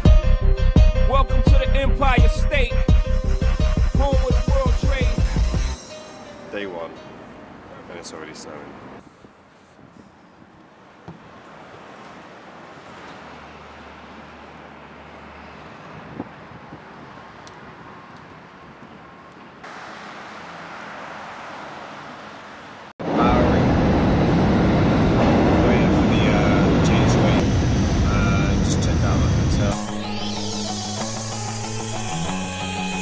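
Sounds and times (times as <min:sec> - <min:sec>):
distant traffic hum: 0:04.8 - 0:29.8
subway train rumbling: 0:23.0 - 0:31.4.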